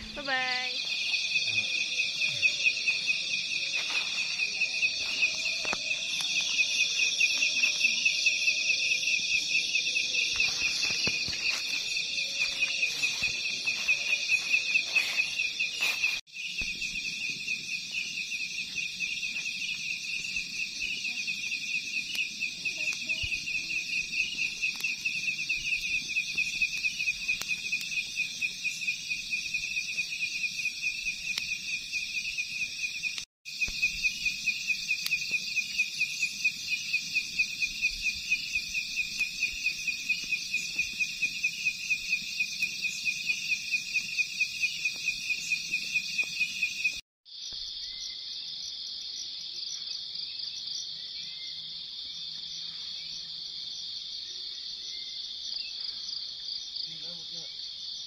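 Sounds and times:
night insects chirping: 0.0 - 58.0.

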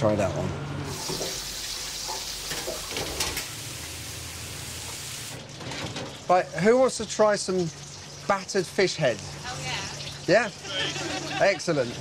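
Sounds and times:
food sizzling in hot oil: 0.9 - 5.4, 6.4 - 12.0.

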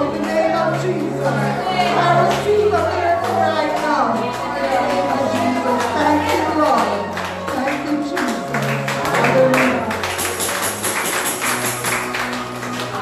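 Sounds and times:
quick percussion beat: 8.3 - 12.4.

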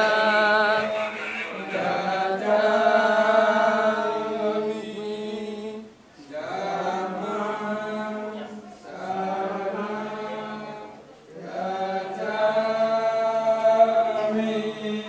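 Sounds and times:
voices chanting long notes: 0.0 - 15.0.

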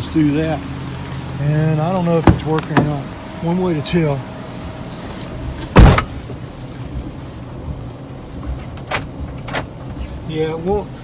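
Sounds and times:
van door slamming shut: 5.6 - 6.2.

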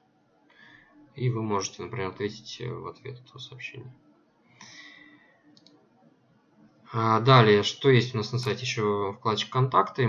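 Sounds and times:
soft hiss: 0.5 - 5.9
computer mouse clicks: 5.5 - 5.8.

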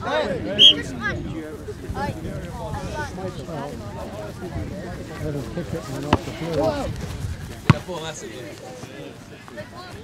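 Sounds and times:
soccer ball kick thud: 6.0 - 6.8, 7.5 - 8.0.

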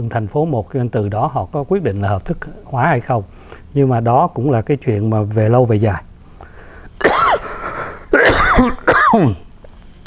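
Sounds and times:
man clearing his throat: 7.0 - 9.4.

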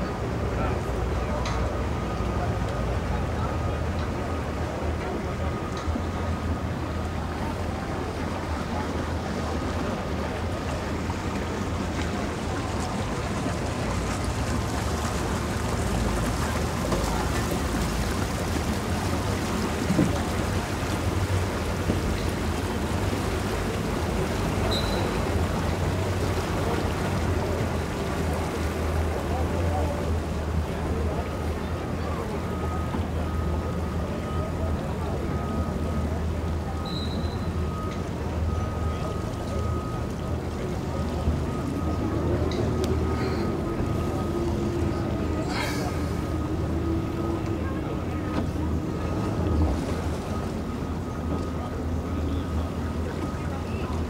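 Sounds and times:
boat motor humming: 0.0 - 54.0
water: 0.0 - 54.0.

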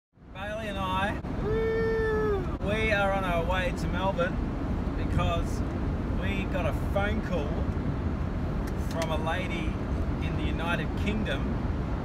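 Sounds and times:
van rumbling on road: 0.2 - 12.0
young man calling out: 0.4 - 3.1.

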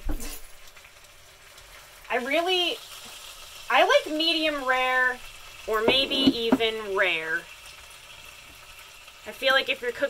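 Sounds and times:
meat sizzling in a pan: 0.0 - 10.0.

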